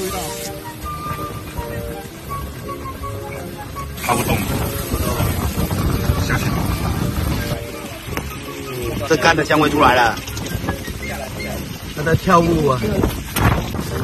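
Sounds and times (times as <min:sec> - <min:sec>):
light melodic background music: 0:00.0 - 0:14.0.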